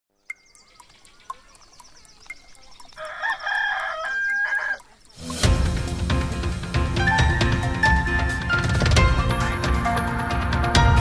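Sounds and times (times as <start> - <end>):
clock ticking: 0.3 - 6.0
rooster crowing: 2.9 - 4.9
theme music: 5.2 - 11.0.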